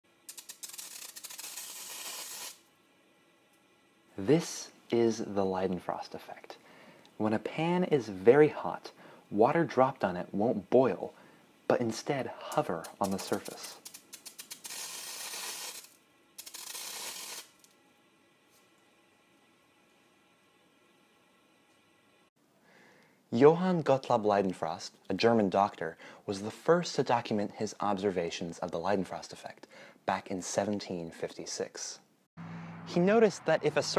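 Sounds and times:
water drops sizzling on hot pan: 0.3s - 2.6s, 12.6s - 17.6s
sharp crackles: 0.3s - 2.7s, 12.4s - 17.7s.

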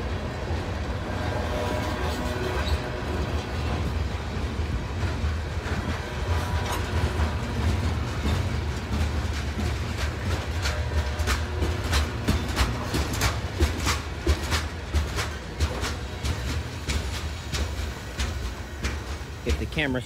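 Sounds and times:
train wheels rumbling on rail: 0.0s - 20.0s
wheels clicking over rail joints: 0.0s - 20.0s.

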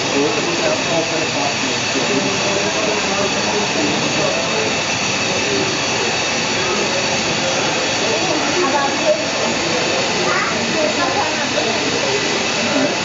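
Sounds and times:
crowd chatter: 0.0s - 13.0s
jet engine hiss and whine: 0.0s - 13.0s.

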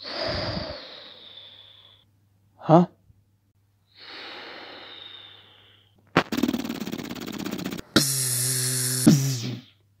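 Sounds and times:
electronic buzzing zap: 6.2s - 9.5s.

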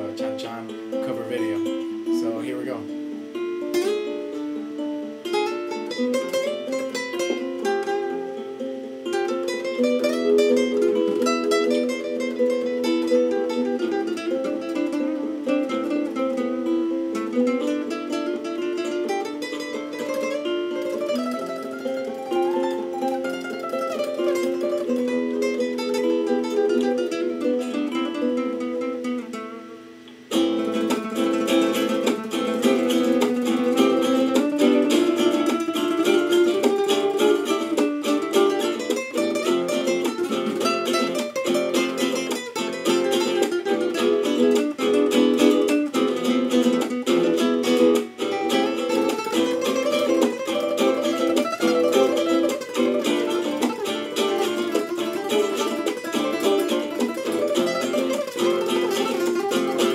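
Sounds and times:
flamenco classical guitar: 0.0s - 59.9s.

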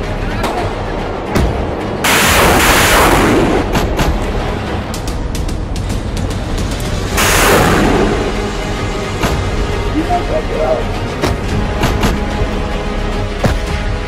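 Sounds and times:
background music: 0.0s - 14.0s
artillery blasts: 1.5s - 4.2s.

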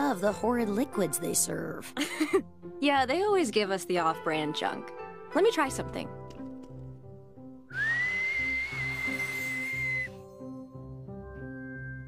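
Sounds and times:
soft background music: 0.0s - 12.0s
held whistle gliding up: 7.7s - 10.2s.

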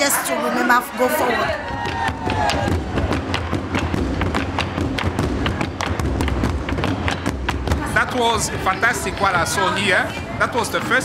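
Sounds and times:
drums struck: 1.6s - 11.0s.

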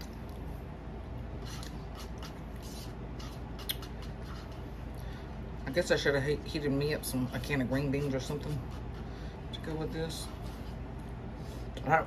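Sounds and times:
person chewing with wet smacking: 0.0s - 5.1s
steady low hum: 0.0s - 12.0s.

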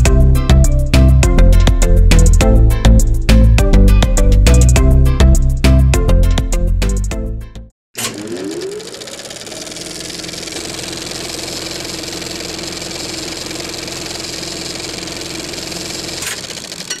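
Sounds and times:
mechanical whir: 8.0s - 17.0s.

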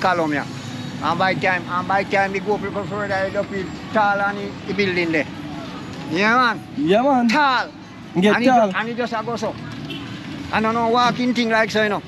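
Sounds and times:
man talking: 0.0s - 5.4s, 6.1s - 9.6s, 10.5s - 12.0s.

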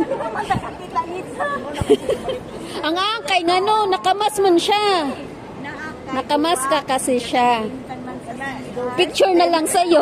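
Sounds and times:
people chattering indistinctly: 0.0s - 10.0s.

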